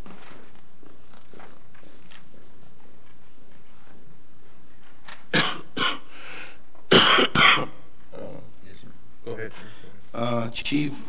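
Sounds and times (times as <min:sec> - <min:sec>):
person coughing: 0:05.3 - 0:06.1, 0:06.9 - 0:07.8.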